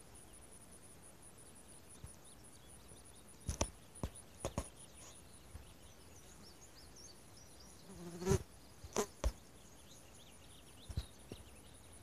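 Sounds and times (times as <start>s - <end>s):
faint high chirping: 0.0s - 12.0s.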